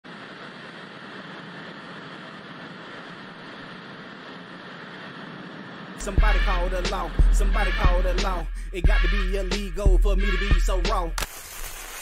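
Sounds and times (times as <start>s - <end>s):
television static hiss: 0.0s - 7.8s, 11.2s - 12.0s.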